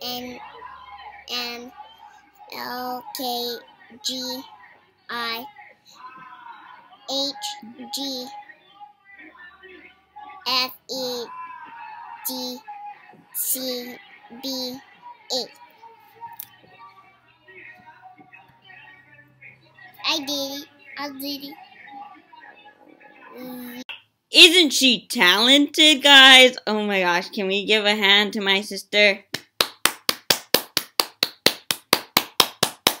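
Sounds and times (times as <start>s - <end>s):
person clapping hands: 29.3s - 33.0s.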